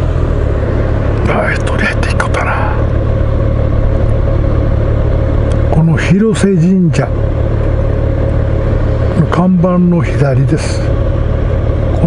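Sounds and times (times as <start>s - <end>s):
motorcycle engine idling: 0.0s - 9.9s.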